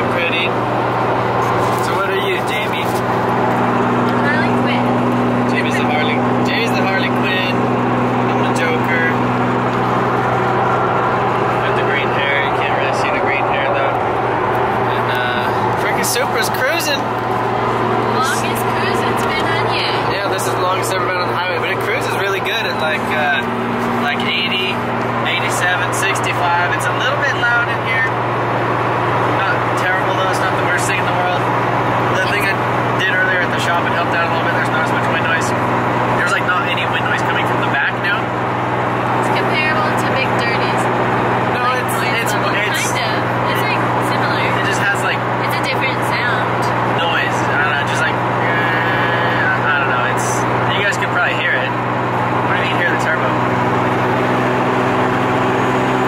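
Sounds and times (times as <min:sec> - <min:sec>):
car engine droning: 0:00.0 - 0:56.0.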